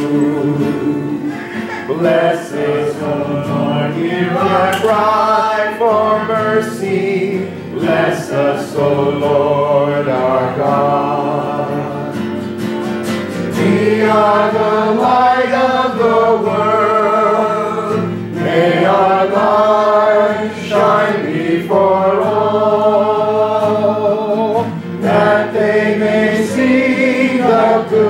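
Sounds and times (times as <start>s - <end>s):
cantor singing a hymn: 0.0s - 12.5s, 13.4s - 28.0s
guitar: 0.0s - 28.0s.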